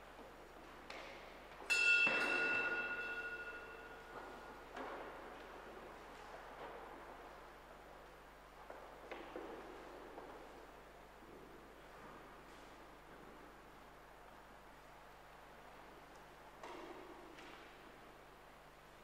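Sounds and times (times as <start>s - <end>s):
small bell ringing: 1.7s - 4.2s.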